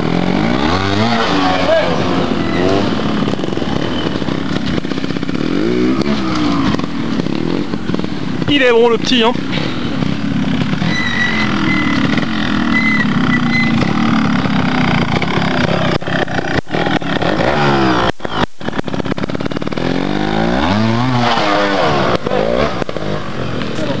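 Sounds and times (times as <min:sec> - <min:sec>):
motorcycle engine revving: 0:00.0 - 0:24.0.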